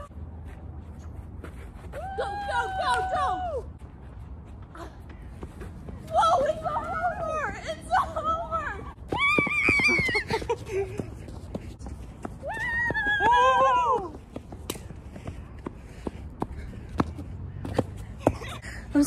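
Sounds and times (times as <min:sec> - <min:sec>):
running footsteps on dirt: 0:08.0 - 0:18.6.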